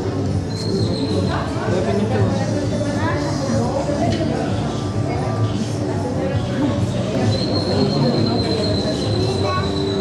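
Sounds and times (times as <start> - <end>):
busy background din: 0.0 - 10.0
high-pitched whistling tone: 0.4 - 1.4, 6.4 - 10.0.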